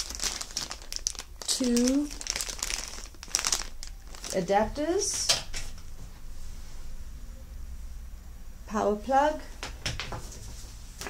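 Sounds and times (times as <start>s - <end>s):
plastic bag crinkling: 0.0s - 5.3s.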